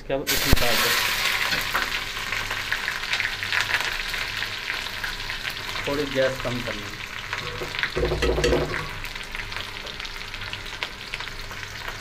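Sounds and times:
onion frying in oil: 0.3 - 12.0.

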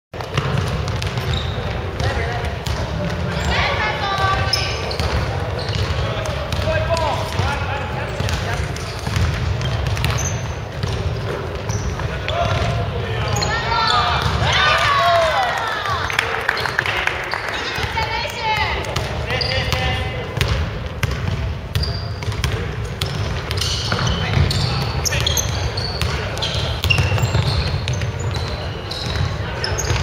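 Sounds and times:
basketball dribbling thuds: 0.2 - 13.0, 14.1 - 14.6, 18.6 - 30.0
sneakers squeaking: 0.2 - 15.5, 17.5 - 30.0
players calling: 1.2 - 20.4.

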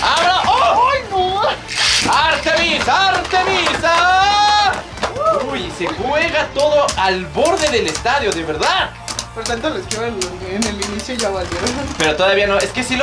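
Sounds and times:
man shouting excitedly: 0.0 - 5.8.

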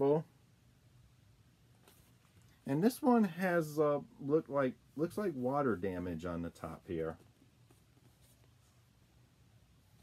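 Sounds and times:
cardboard record sleeve rustling: 1.7 - 2.6, 5.0 - 9.1
person speaking: 2.6 - 7.4.

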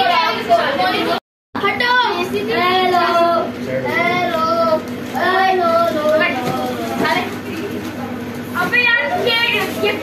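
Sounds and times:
child singing: 0.0 - 6.8.

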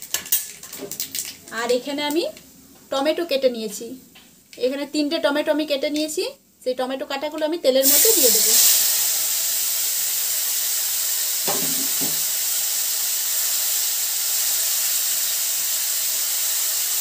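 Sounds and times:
tomatoes sizzling in oil: 7.8 - 17.0.

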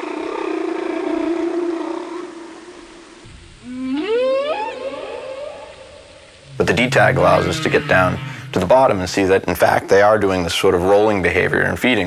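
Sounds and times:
whale rising upsweep call: 3.6 - 9.2
whale low moan: 6.4 - 9.1.

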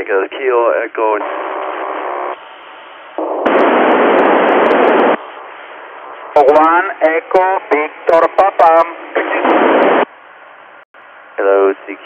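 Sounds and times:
radio receiver hiss: 2.4 - 10.1
loud burst of static: 3.2 - 5.6, 6.3 - 10.1.

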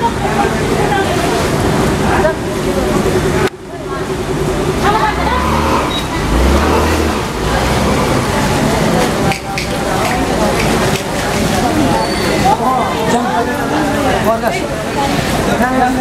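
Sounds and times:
people talking: 0.0 - 16.0
river rushing: 0.0 - 16.0.

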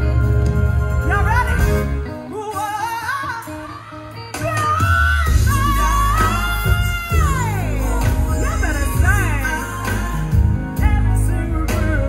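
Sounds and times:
live band accompaniment: 0.0 - 12.0.

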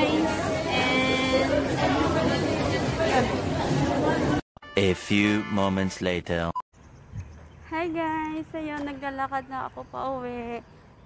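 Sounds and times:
crowd talking in food court: 0.0 - 4.4.

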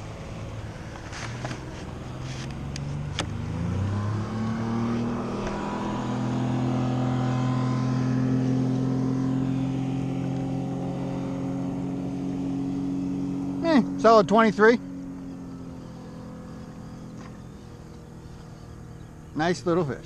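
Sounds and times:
motorboat engine humming: 0.0 - 20.0.

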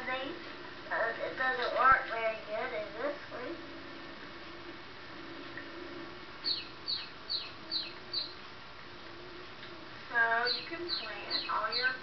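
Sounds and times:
chick peeping: 6.4 - 8.4, 10.4 - 12.0.

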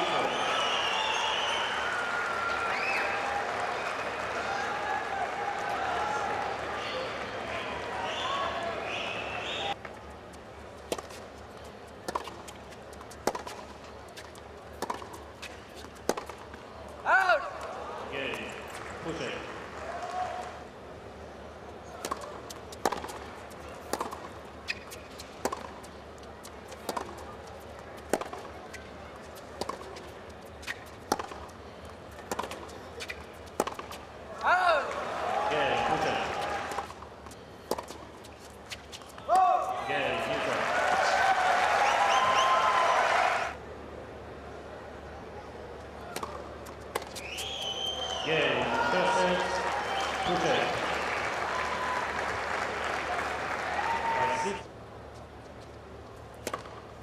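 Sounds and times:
high steady whistle-like tone: 0.0 - 1.9, 47.2 - 48.3
steady background hum: 0.0 - 57.0
tennis ball bouncing on court: 10.9 - 11.2, 12.0 - 17.7, 21.9 - 35.0, 35.7 - 39.5, 46.1 - 47.6, 56.3 - 56.9
tennis ball struck by rackets: 12.0 - 16.6, 22.0 - 25.8, 26.7 - 27.2, 28.0 - 28.6, 29.6 - 31.5, 32.1 - 34.0, 36.7 - 39.5, 46.1 - 47.5, 56.4 - 56.8.

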